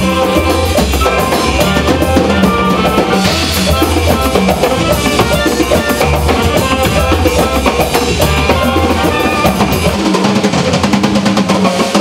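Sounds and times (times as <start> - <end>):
drum kit: 0.0 - 12.0
hand drums: 0.0 - 12.0.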